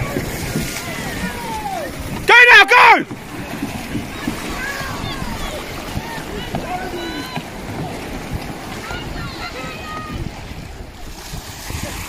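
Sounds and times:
distant shouts: 0.0 - 10.4
paddle splashing: 0.0 - 12.0
surf: 0.0 - 12.0
wind buffeting microphone: 0.0 - 12.0.

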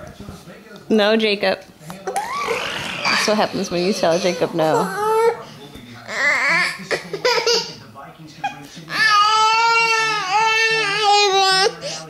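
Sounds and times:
toddler crying: 2.2 - 5.4, 6.1 - 7.6, 8.9 - 11.8.

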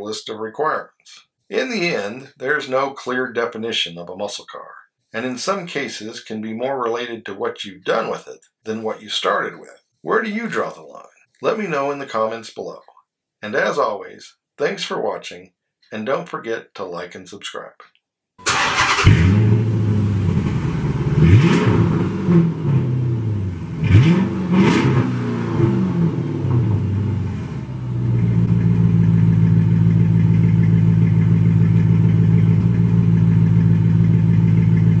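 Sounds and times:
car engine revving and idling: 18.8 - 35.0.

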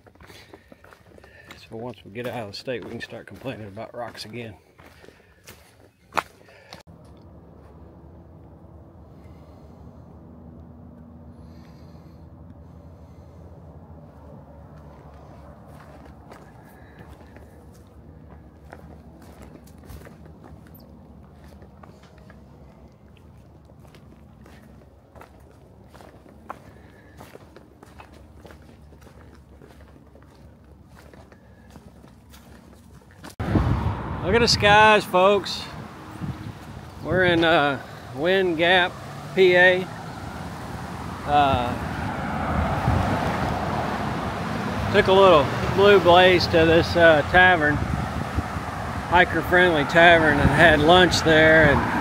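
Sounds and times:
boots on rocky trail: 0.0 - 7.8, 14.7 - 33.4.

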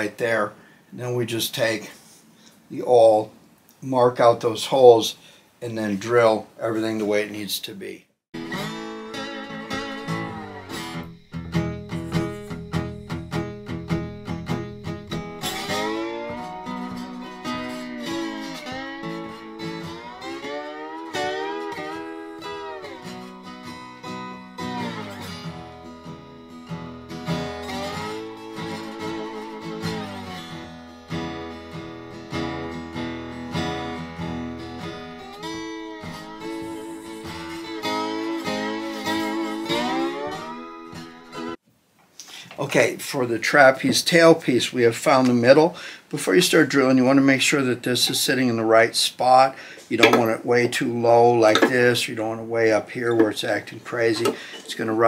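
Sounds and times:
blues slide guitar: 8.4 - 41.6, 51.0 - 55.0.

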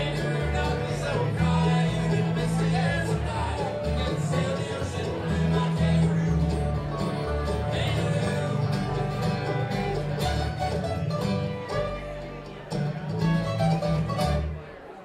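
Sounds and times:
upright bass notes: 0.0 - 14.8
acoustic guitar: 0.0 - 15.0
banjo: 0.0 - 15.0
mandolin: 0.0 - 15.0.

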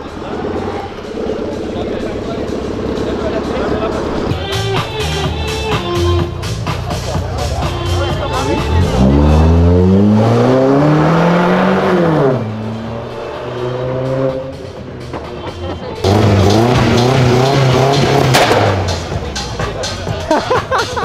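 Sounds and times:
car engine revving: 0.0 - 5.6, 6.2 - 20.2.

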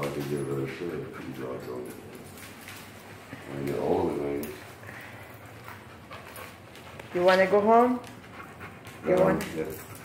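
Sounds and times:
dog panting softly: 0.0 - 2.4, 4.6 - 10.0.

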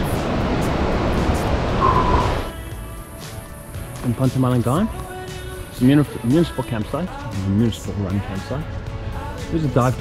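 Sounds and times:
rushing wind: 0.0 - 2.6
surf on a beach: 0.0 - 3.7
background music: 0.0 - 10.0.

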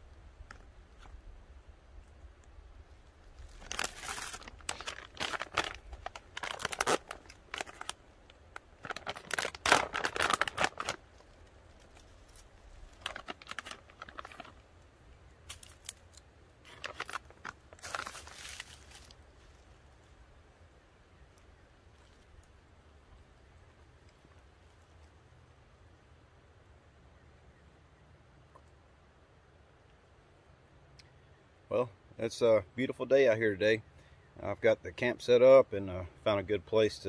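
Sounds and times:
snack packet crinkling: 3.4 - 14.6, 15.5 - 19.2.

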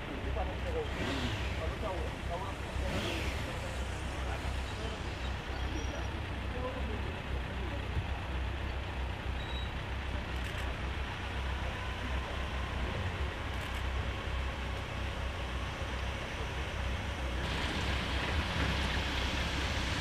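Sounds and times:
faint voices: 0.0 - 14.1
vehicle engines rumbling: 0.0 - 20.0.

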